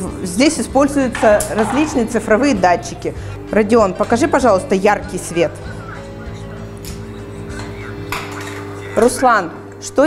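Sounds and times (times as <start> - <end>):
soft music of held tones: 0.0 - 10.0.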